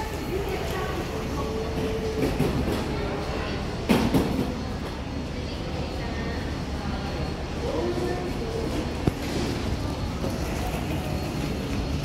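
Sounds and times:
distant voices: 0.0s - 12.0s.

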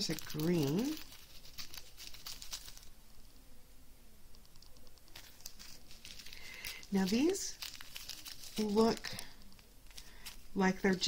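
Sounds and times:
plastic bags crinkling: 0.0s - 3.0s, 5.1s - 11.0s.

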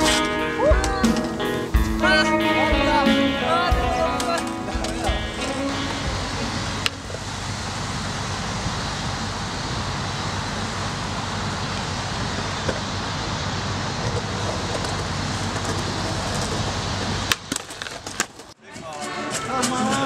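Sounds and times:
steady outdoor roar: 0.0s - 18.6s.

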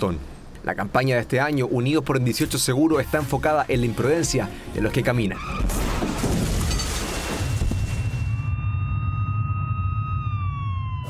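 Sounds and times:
high ringing tone: 7.4s - 11.0s
siren sliding down in pitch: 8.2s - 11.0s.

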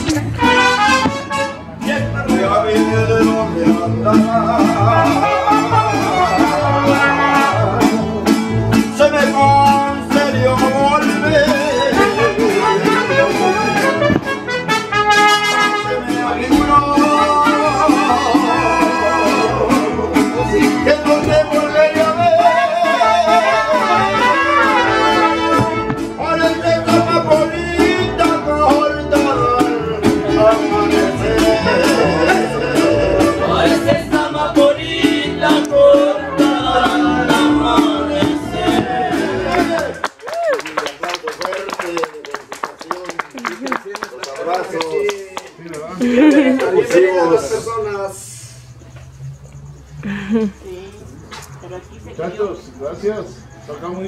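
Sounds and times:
strummed guitars: 0.0s - 40.1s
trumpets playing melody: 0.1s - 2.0s, 4.8s - 7.8s, 11.5s - 19.9s, 22.1s - 27.2s
person singing: 15.8s - 40.0s.

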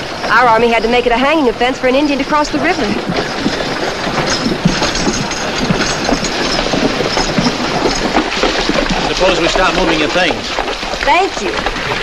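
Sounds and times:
hooves clattering: 0.0s - 12.0s
wooden wheels and harness rattling: 0.0s - 12.0s.

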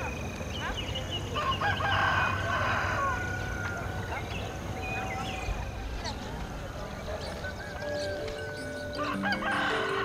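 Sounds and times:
rooster crowing: 1.4s - 4.1s, 9.0s - 10.0s
soft music: 6.9s - 10.0s.

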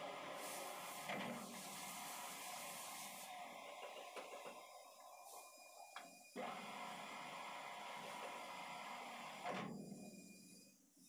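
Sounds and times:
metal lathe hissing: 0.0s - 5.9s.

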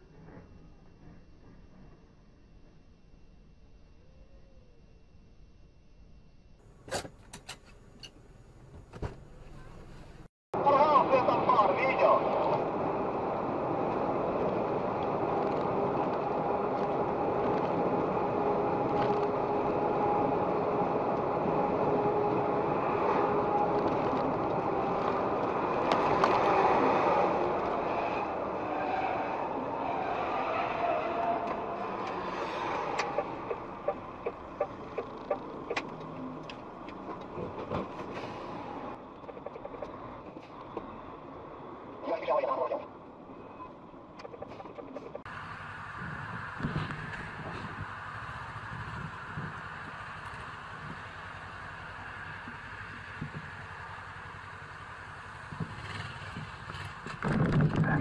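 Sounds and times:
faint steady tones: 0.0s - 26.5s
engine and road drone: 0.0s - 58.0s.

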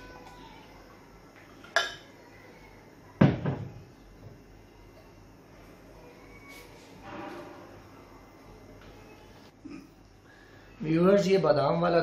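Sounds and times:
glass clinking: 1.6s - 2.1s.

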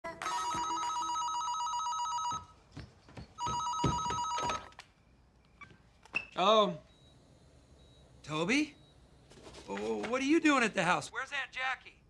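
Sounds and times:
soft knocks: 2.7s - 4.6s.

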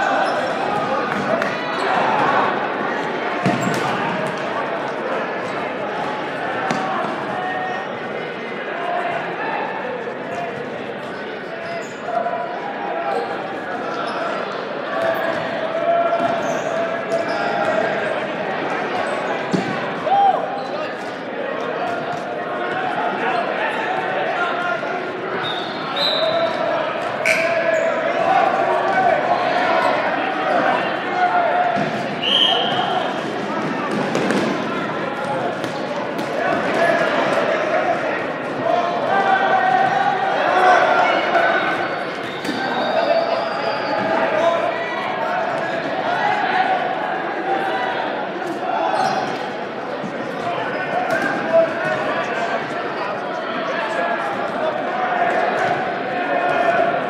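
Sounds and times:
indistinct shouting and chatter: 0.0s - 57.0s.

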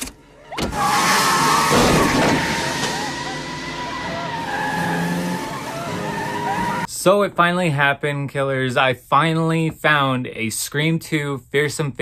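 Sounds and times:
car engine whine: 0.0s - 6.9s
tyres squealing on road: 0.2s - 6.9s.

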